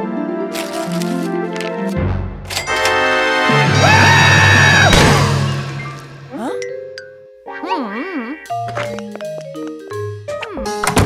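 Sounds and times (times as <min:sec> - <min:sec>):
cartoon character shrieking: 0:03.8 - 0:04.9
sharp hit: 0:04.6 - 0:06.3.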